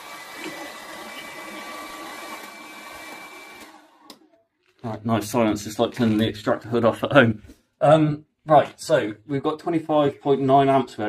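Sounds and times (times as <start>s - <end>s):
hair dryers whirring: 0.0s - 4.3s.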